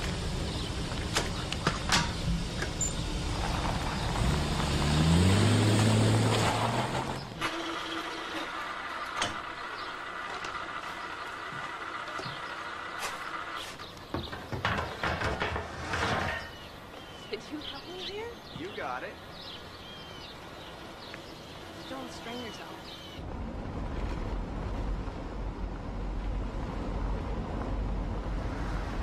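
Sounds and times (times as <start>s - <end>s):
truck driving by: 0.0s - 14.0s.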